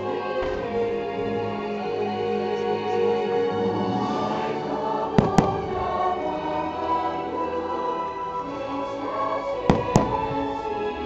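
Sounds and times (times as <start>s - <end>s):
steady music: 0.0s - 11.0s
firework bangs: 5.1s - 6.2s, 9.7s - 10.4s.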